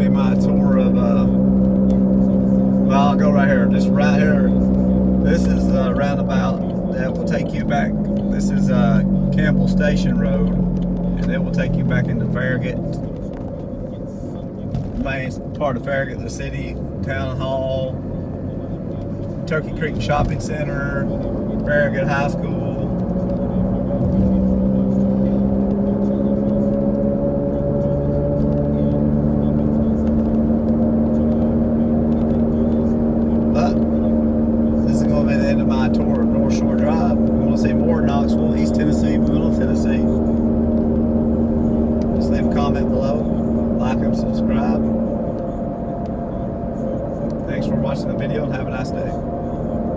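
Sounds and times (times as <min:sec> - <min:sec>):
car engine humming inside cabin: 0:00.0 - 0:49.9.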